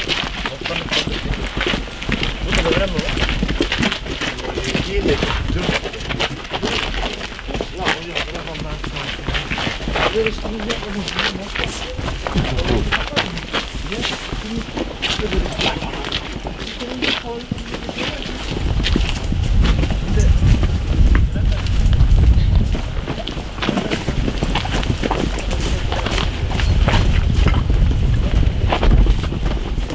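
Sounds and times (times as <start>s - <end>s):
footsteps on stony dirt path: 0.0s - 29.9s
indistinct voices: 2.2s - 27.6s
low rumble: 18.3s - 29.9s.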